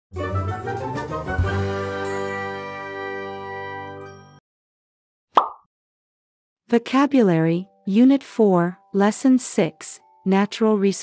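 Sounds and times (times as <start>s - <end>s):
chiming jingle: 2.0s - 4.4s
pop sound effect: 5.4s - 5.7s.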